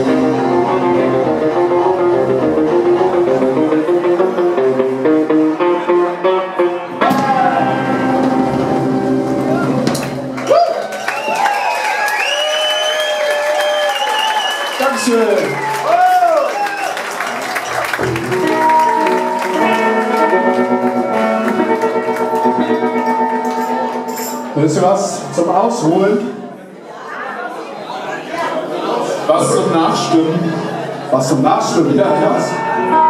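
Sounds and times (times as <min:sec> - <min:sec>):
live band playing with guitars: 0:00.0 - 0:10.5, 0:17.5 - 0:26.3, 0:29.4 - 0:33.0.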